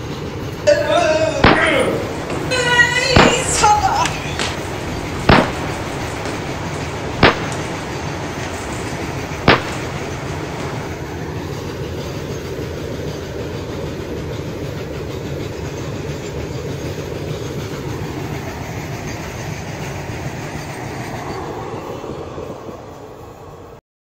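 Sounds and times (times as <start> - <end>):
freight train wheels on rails: 0.0 - 23.8.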